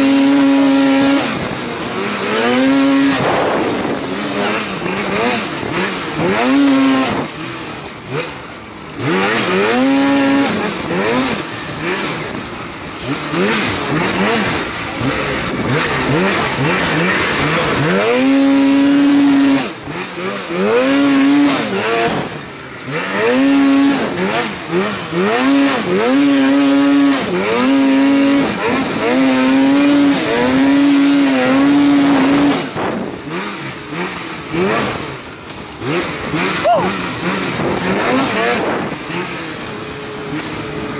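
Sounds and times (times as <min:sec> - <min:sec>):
snowmobile engine accelerating: 0:00.0 - 0:40.9
wind on microphone: 0:03.1 - 0:04.2
person calling out: 0:36.6 - 0:37.0.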